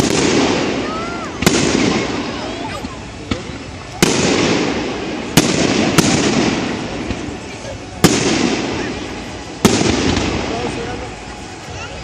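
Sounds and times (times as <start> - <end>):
long echo of bangs: 0.0 - 7.4, 8.0 - 10.8
firework shells bursting: 0.0 - 10.5.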